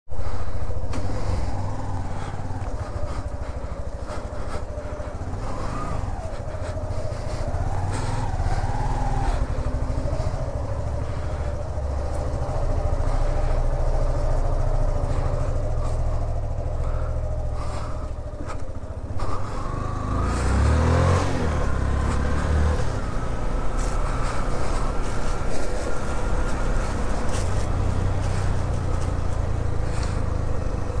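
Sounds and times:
motorcycle engine running: 0:00.1 - 0:31.0.

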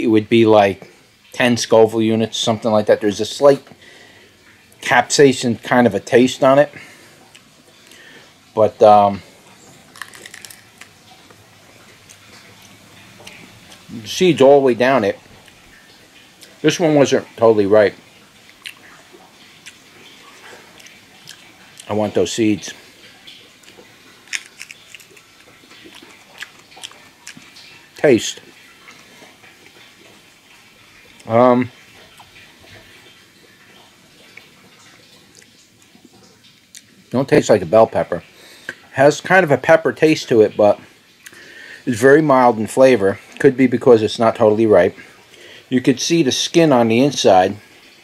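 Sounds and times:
person chewing crisp pepper: 0:09.7 - 0:14.0, 0:18.4 - 0:19.0, 0:19.6 - 0:21.9, 0:23.6 - 0:29.9
crunchy pepper bite and chewing: 0:09.8 - 0:11.0, 0:23.6 - 0:27.7.

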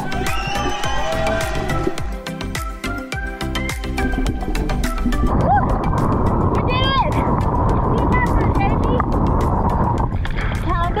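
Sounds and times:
people whooping: 0:00.0 - 0:02.2, 0:05.3 - 0:05.8
water splashing: 0:03.8 - 0:11.0.

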